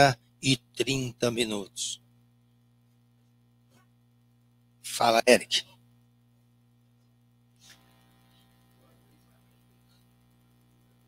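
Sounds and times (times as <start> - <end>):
man's voice: 0.0 - 2.0, 4.9 - 5.6
steady low hum: 0.0 - 11.0.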